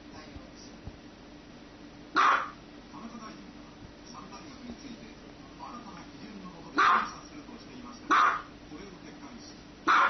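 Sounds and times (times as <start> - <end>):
dog barking: 2.2 - 2.6, 6.8 - 7.2, 8.1 - 8.5.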